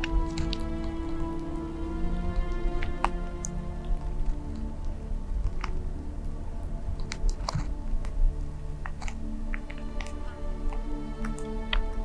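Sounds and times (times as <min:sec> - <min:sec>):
background music low tones: 0:00.0 - 0:12.0
wet clicks of snake jaws: 0:00.0 - 0:12.0.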